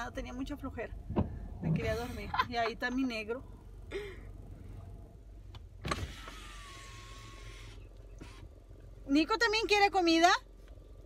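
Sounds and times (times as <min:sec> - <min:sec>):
low steady rumble: 0:00.0 - 0:11.0
electric window motor whirring: 0:05.8 - 0:08.8.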